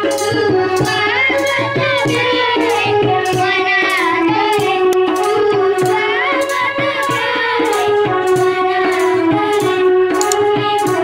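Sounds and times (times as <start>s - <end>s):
children singing into microphones: 0.0s - 11.0s
percussion beat: 0.0s - 11.0s.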